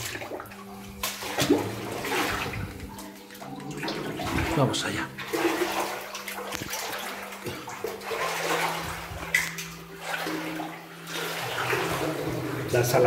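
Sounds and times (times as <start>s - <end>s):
wading through shallow water: 0.0s - 12.9s.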